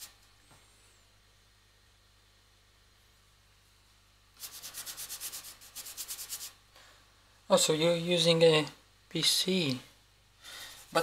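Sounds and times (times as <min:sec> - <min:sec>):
paintbrush scrubbing on board: 0:04.4 - 0:06.6.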